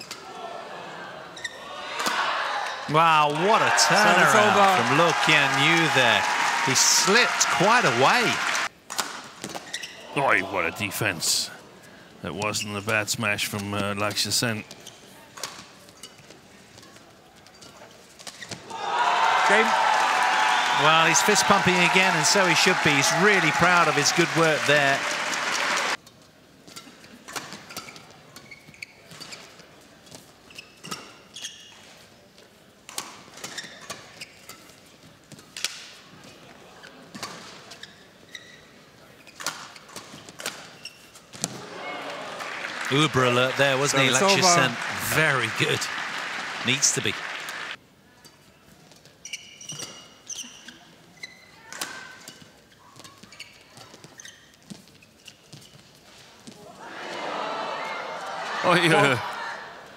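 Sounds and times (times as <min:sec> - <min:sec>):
shoes squeaking on court: 0:09.4 - 0:10.0, 0:14.7 - 0:18.6, 0:26.6 - 0:32.2, 0:33.4 - 0:35.5, 0:36.2 - 0:41.6, 0:48.8 - 0:56.6.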